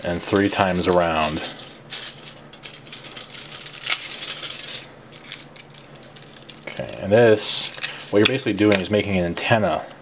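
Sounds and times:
aluminum foil crinkling: 0.0 - 9.1.

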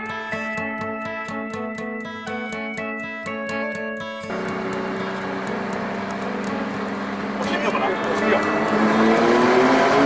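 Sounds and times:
car engine drone: 4.3 - 10.0
road noise inside car: 4.3 - 10.0.

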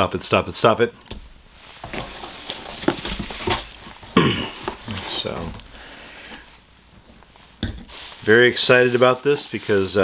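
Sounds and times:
packaging rustling: 1.4 - 10.0.

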